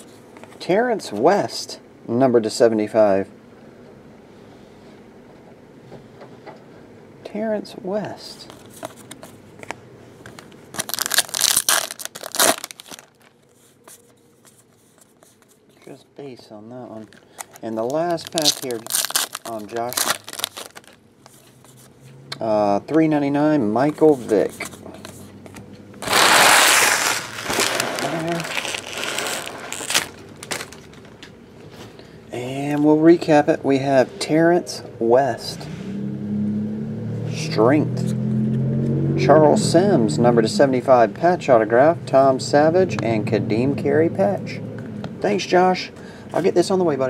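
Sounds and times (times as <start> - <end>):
cards being handled: 8.4 - 16.0, 17.0 - 22.0
foil wrapper tearing and crinkling: 10.8 - 13.5, 17.1 - 21.0, 26.0 - 31.0.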